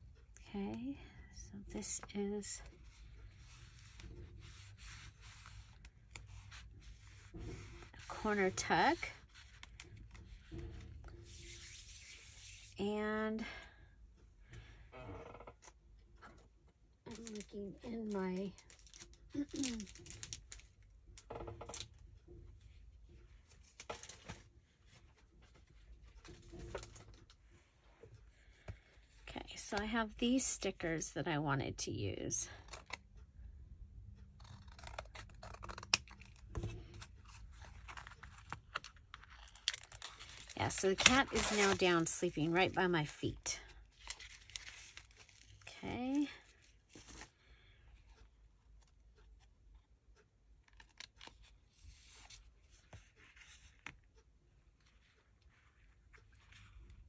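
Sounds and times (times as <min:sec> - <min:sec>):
stickers and papers rustling: 0:01.7 - 0:12.8, 0:17.1 - 0:20.8, 0:34.4 - 0:48.2
paper pages rustling: 0:34.5 - 0:42.6, 0:43.9 - 0:46.2, 0:50.7 - 0:54.1.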